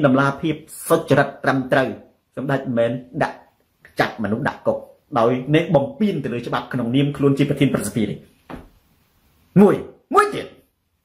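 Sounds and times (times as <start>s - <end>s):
man speaking: 0.0s - 8.4s, 9.5s - 10.7s.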